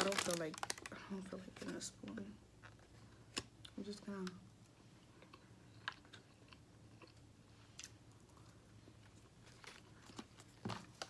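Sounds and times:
person chewing rice: 5.0 - 10.3.

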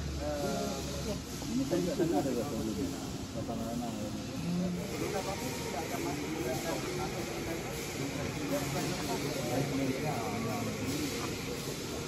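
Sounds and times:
distant people talking: 0.0 - 12.0
steady background hiss: 0.0 - 12.0.

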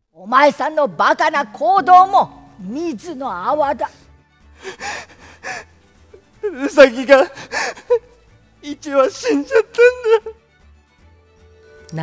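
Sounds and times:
soft background music: 0.1 - 12.0
person gasping: 4.6 - 5.8, 7.4 - 8.0.

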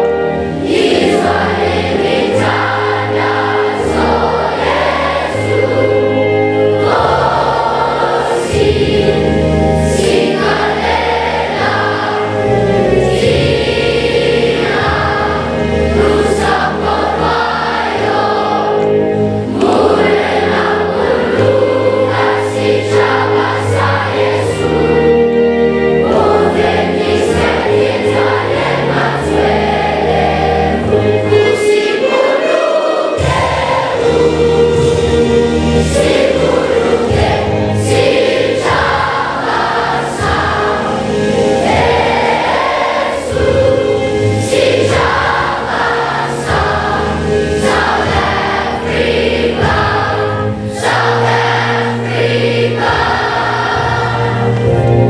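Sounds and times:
many voices singing together: 0.0 - 55.0.

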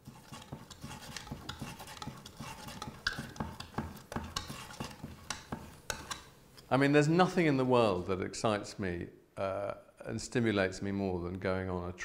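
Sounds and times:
palette knife scraping and tapping: 0.0 - 6.7.

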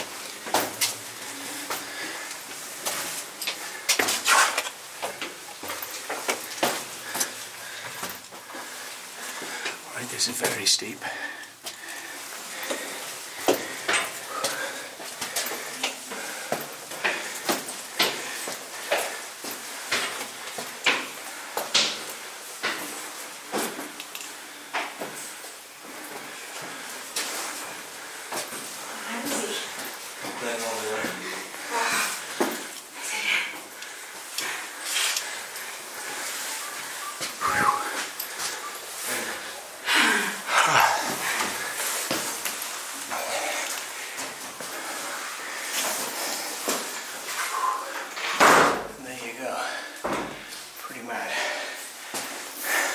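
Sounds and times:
footsteps on stone steps: 0.0 - 9.8, 11.6 - 22.9.

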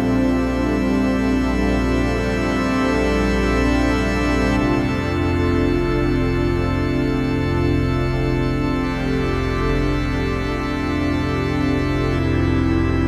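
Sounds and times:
slow keyboard chords: 0.0 - 13.0.

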